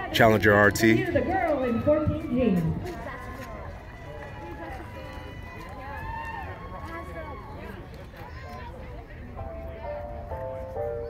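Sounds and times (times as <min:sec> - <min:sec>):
close speaker talking: 0:00.0 - 0:01.5
people talking nearby: 0:00.0 - 0:11.0.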